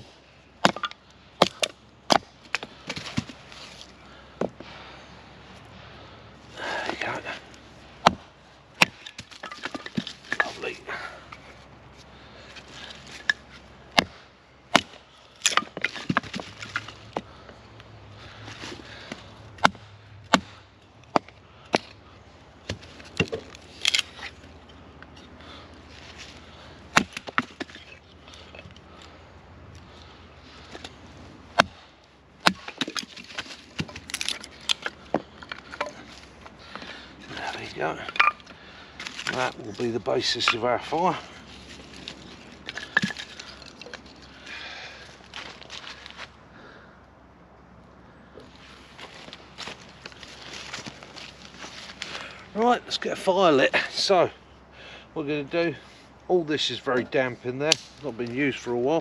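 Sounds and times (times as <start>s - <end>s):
wood cracking and splitting: 0.6s - 4.6s, 8.0s - 11.1s, 12.5s - 17.5s, 22.6s - 25.2s, 26.0s - 29.2s, 30.6s - 46.2s, 57.7s - 58.6s.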